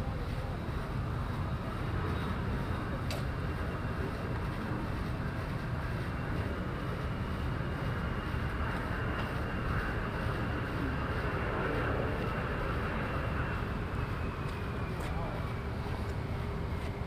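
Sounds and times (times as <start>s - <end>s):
distant jet engine roar: 0.0s - 17.0s.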